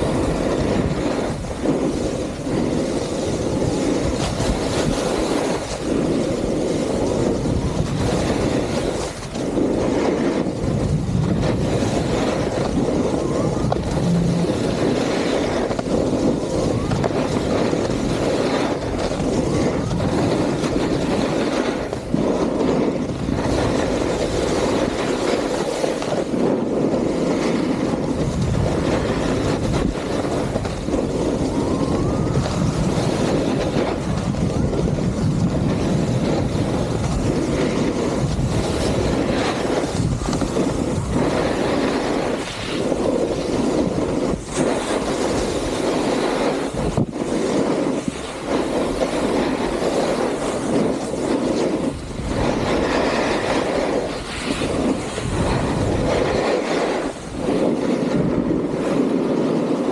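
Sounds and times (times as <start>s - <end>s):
snowboard scraping over snow: 0.0s - 59.9s
wind on microphone: 0.0s - 59.9s.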